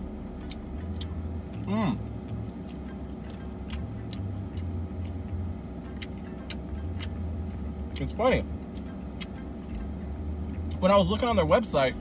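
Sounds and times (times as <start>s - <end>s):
low hum inside a car: 0.0s - 12.0s
person chewing: 0.2s - 10.8s
wet mouth clicks: 5.9s - 8.1s, 8.7s - 9.8s.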